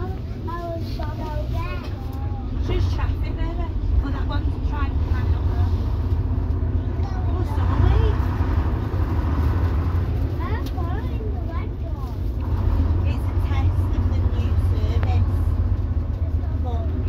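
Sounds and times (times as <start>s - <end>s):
coach diesel engine rumbling: 0.0s - 17.0s.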